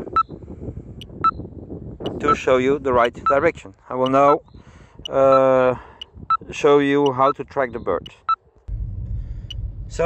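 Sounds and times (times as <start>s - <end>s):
wind rumble on microphone: 0.0s - 3.8s, 4.4s - 6.8s, 7.6s - 10.0s.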